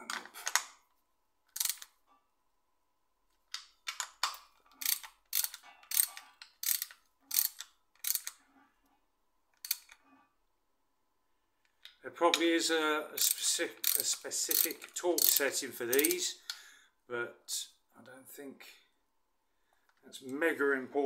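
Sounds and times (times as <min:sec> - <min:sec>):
socket ratchet clicking: 0:01.5 - 0:02.0, 0:03.5 - 0:08.4, 0:09.6 - 0:10.0, 0:13.2 - 0:16.6.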